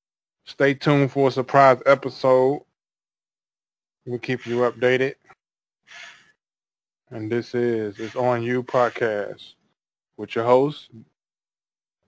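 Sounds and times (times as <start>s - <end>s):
man speaking: 0.5s - 2.7s, 4.1s - 5.2s, 7.1s - 9.6s, 10.2s - 11.2s.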